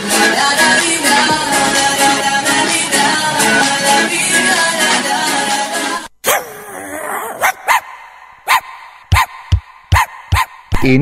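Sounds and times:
dog barking: 6.3 - 6.6, 7.4 - 10.8.

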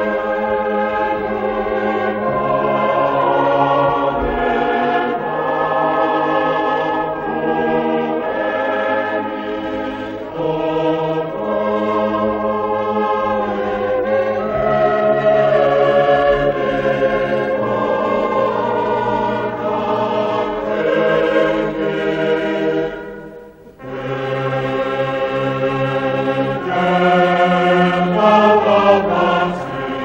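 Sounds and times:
choir singing a slow hymn: 0.0 - 30.0.

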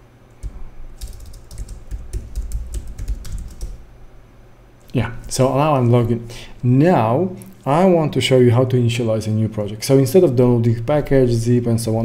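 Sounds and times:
computer keyboard typing: 0.4 - 3.8.

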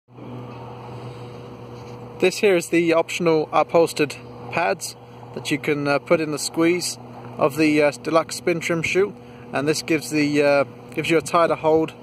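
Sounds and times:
steady low hum: 0.1 - 12.0.

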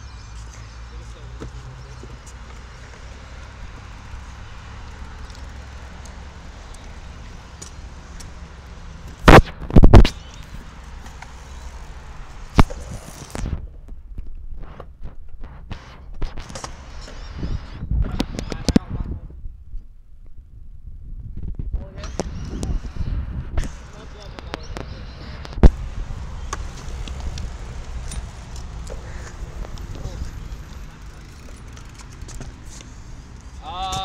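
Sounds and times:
wheels rolling on concrete: 0.0 - 13.6, 23.6 - 34.0.

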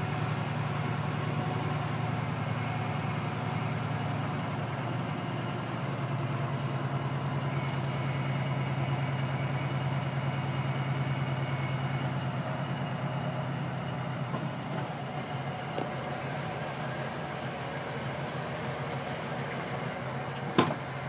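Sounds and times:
truck diesel engine drone: 0.0 - 21.0.

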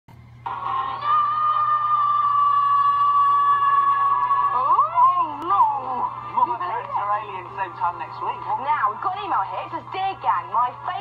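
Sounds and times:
faint low hum: 0.1 - 11.0.

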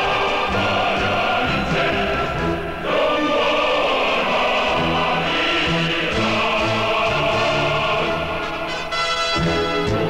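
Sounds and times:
men's choir singing: 0.0 - 10.0
orchestra playing: 7.1 - 10.0.

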